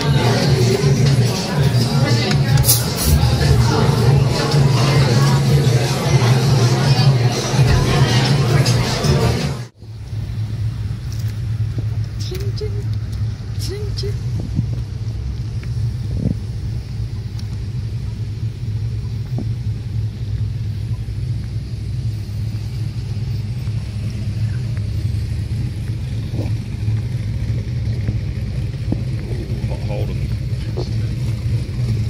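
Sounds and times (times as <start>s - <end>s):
car road rumble inside cabin: 0.0s - 32.0s.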